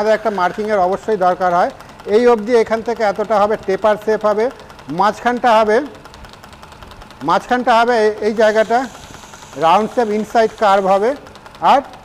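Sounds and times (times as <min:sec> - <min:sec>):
wood lathe running: 0:00.0 - 0:12.0.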